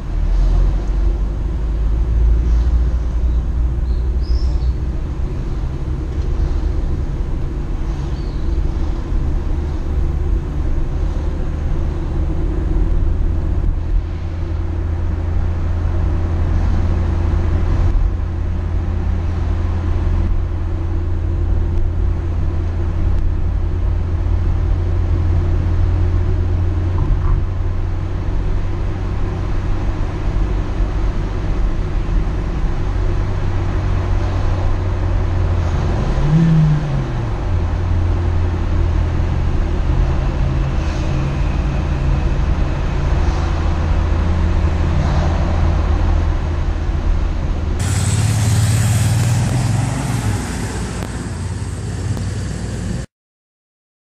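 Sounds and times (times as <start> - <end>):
car engine and road noise: 0.0 - 53.1.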